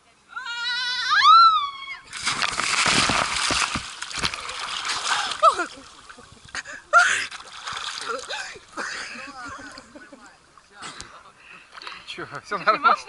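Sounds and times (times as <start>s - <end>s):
water churning: 2.0s - 10.9s
loud splash into water: 2.1s - 5.6s.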